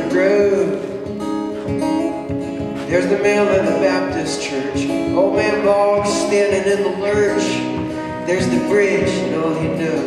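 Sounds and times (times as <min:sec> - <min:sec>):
man singing: 0:00.0 - 0:01.2, 0:02.8 - 0:10.0
acoustic guitar strumming: 0:00.0 - 0:10.0.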